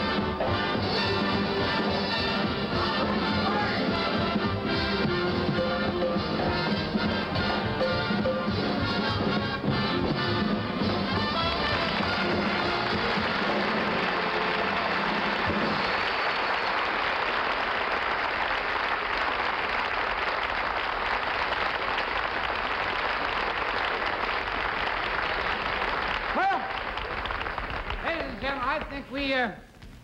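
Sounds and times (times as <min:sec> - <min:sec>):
band playing: 0:00.0 - 0:17.4
audience applauding: 0:10.3 - 0:28.9.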